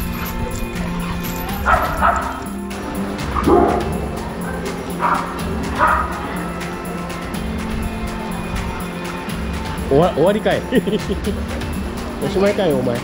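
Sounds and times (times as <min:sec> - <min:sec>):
background music: 0:00.0 - 0:13.0
dog barking: 0:01.0 - 0:07.3.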